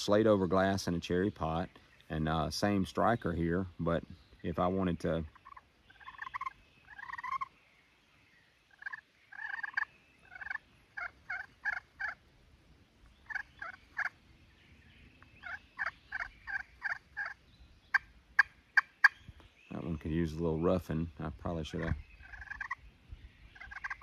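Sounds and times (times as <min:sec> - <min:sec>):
turkey call yelping notes: 0:05.3 - 0:07.5, 0:08.7 - 0:12.2, 0:13.2 - 0:14.1, 0:15.4 - 0:19.2, 0:22.2 - 0:22.8, 0:23.6 - 0:24.0.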